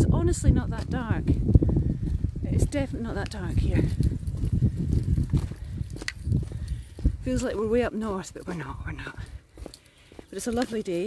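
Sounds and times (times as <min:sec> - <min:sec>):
footsteps on a lane: 0:00.7 - 0:11.0.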